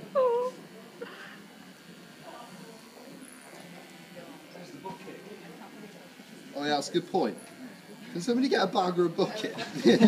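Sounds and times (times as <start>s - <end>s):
faint background voices murmuring: 0.0s - 10.0s.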